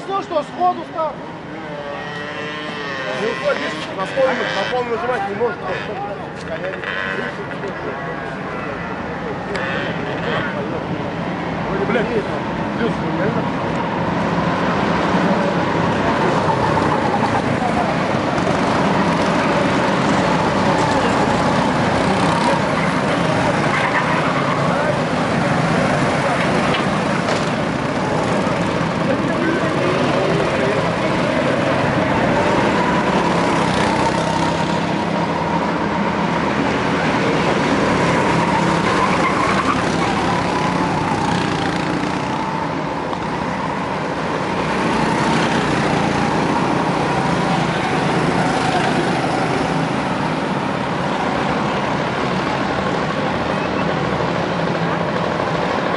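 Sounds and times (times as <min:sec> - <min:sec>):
racing kart engines droning: 0:00.0 - 0:55.9.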